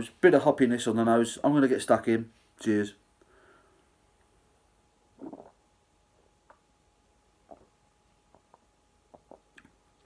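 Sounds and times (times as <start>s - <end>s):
man gulping a drink: 5.1s - 6.7s, 7.4s - 10.0s.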